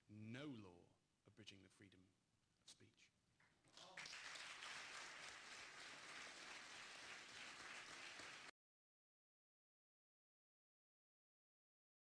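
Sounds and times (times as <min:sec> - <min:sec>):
audience applause: 0:03.7 - 0:08.5.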